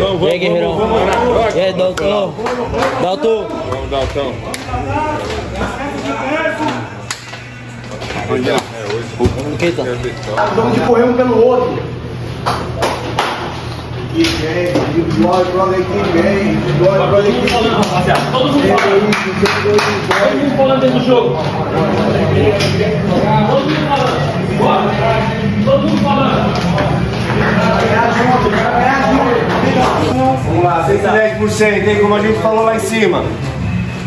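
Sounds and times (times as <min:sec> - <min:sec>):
background music: 0:00.0 - 0:12.2, 0:15.6 - 0:34.0
men talking: 0:00.0 - 0:33.8
men's voices chattering: 0:00.0 - 0:34.0
hand claps: 0:06.6 - 0:07.4, 0:12.4 - 0:13.6, 0:17.4 - 0:20.4.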